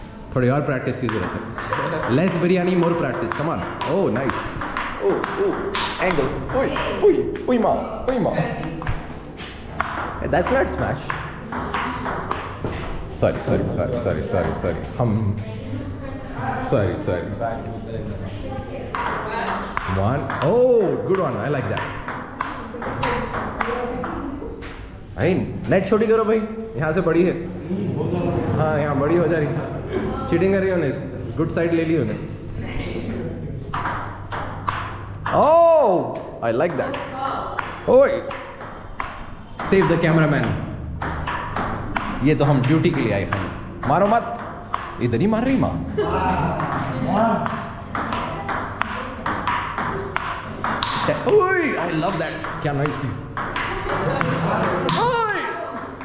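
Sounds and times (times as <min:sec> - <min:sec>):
table tennis ball clicking: 0:01.0 - 0:07.6, 0:08.6 - 0:12.7, 0:18.9 - 0:24.9, 0:33.7 - 0:45.6, 0:46.6 - 0:55.0.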